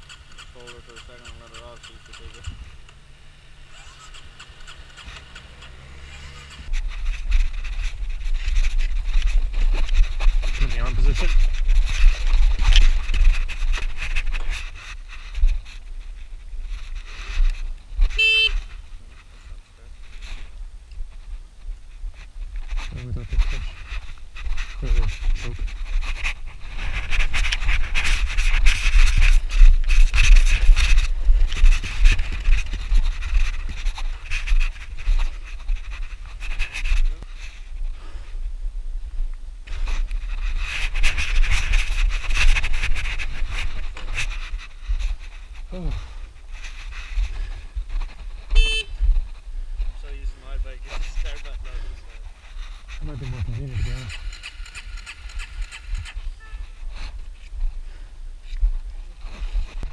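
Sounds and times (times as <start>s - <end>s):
motorcycles rumbling on wet road: 0.0s - 8.6s
wind buffeting microphone: 6.6s - 19.2s, 19.9s - 59.9s.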